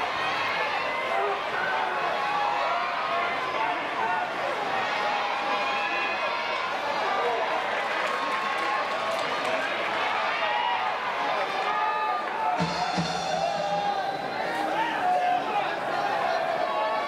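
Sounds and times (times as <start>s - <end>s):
crowd voices: 0.0s - 17.0s
music from cheering section: 12.1s - 14.9s
crowd chanting: 12.2s - 17.0s.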